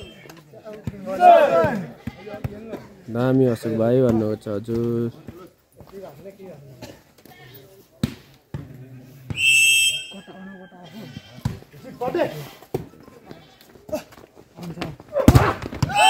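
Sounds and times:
referee's whistle: 0.0s - 0.2s, 9.3s - 10.5s
crowd chatter and shouts: 0.0s - 2.7s.

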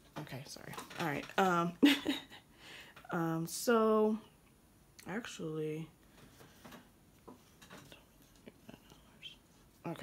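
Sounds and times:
woman speaking: 0.1s - 2.1s, 3.0s - 4.3s, 5.0s - 5.9s, 8.6s - 10.0s
person whispering: 7.9s - 10.0s.

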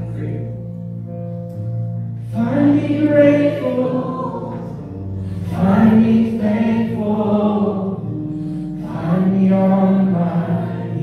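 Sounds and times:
sustained instrumental chords: 0.0s - 11.0s
group singing worship song: 2.3s - 8.2s, 8.8s - 11.0s.

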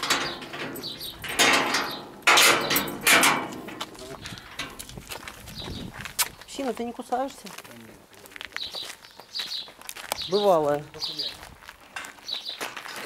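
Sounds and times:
metal gate scraping: 0.0s - 4.9s.

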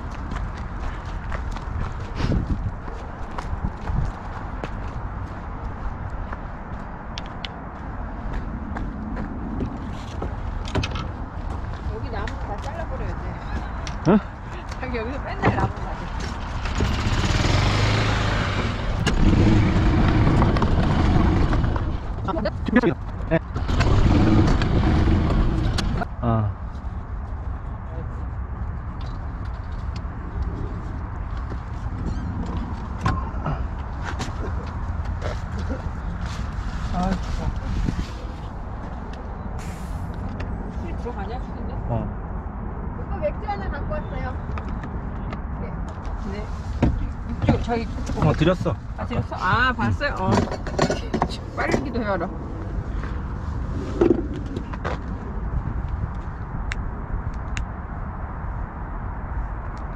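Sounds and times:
golf cart rumbling: 14.1s - 26.1s, 46.9s - 55.8s
rushing noise: 39.6s - 40.4s.

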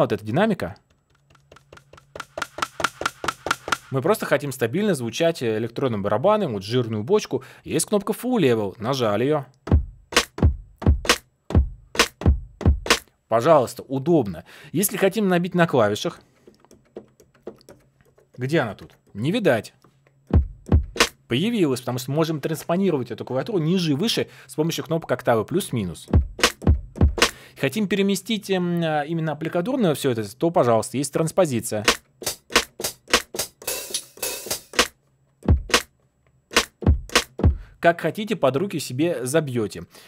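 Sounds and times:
keyboard keys clicking: 0.8s - 3.8s, 16.4s - 19.1s
electronic drum hits: 2.2s - 3.9s, 9.7s - 13.0s, 20.4s - 21.1s, 26.2s - 27.3s, 35.5s - 35.8s, 36.6s - 37.6s
deep kick drum hits: 9.7s - 13.0s, 20.4s - 21.1s, 26.2s - 27.3s, 35.5s - 35.8s, 36.8s - 37.7s.

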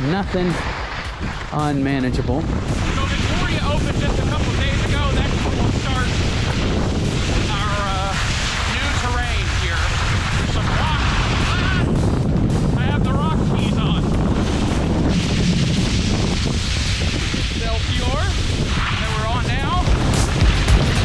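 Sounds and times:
skis scraping over snow: 0.0s - 21.0s
wind on microphone: 0.0s - 21.0s.

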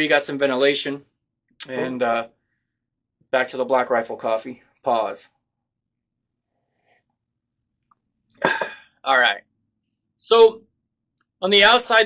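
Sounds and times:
man clearing throat: 8.4s - 8.8s.

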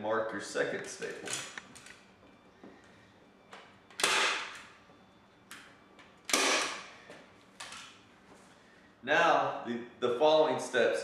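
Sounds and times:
staple gun firing: 4.0s - 4.7s, 6.3s - 6.9s.

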